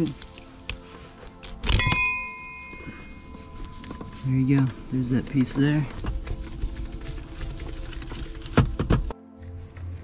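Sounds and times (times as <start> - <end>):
metallic clang ringing: 1.8 - 3.2.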